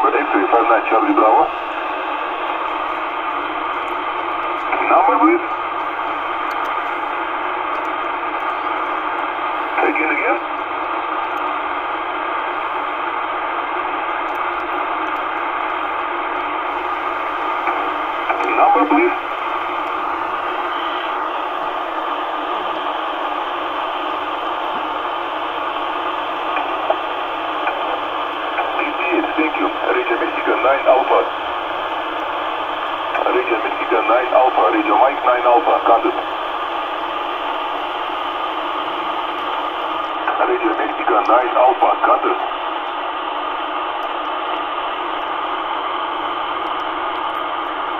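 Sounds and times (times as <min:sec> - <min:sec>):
garbled radio voice: 0:00.0 - 0:02.6, 0:04.6 - 0:05.6, 0:09.8 - 0:10.5, 0:17.7 - 0:19.3, 0:27.7 - 0:31.5, 0:33.1 - 0:36.3, 0:40.2 - 0:42.6
radio receiver hiss: 0:00.0 - 0:47.9.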